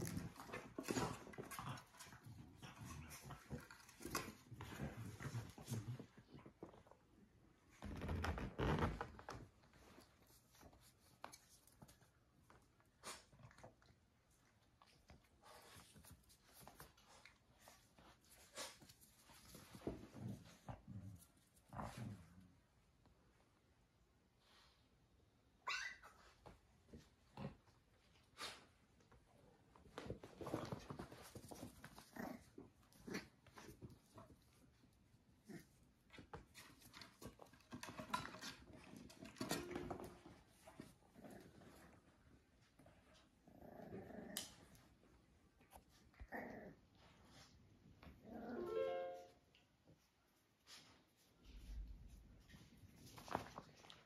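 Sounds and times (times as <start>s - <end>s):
dogs moving on floor: 0.0s - 14.0s, 14.7s - 22.4s, 26.3s - 35.0s, 36.0s - 43.3s, 50.6s - 54.0s
puppies scuffling: 0.0s - 22.3s, 26.3s - 43.4s, 50.0s - 54.0s.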